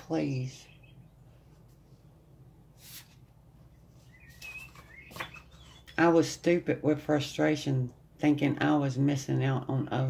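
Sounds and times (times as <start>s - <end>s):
low steady hum: 0.0s - 10.0s
faint high wavering chirps: 4.0s - 5.9s
paper card rustle: 4.3s - 5.5s.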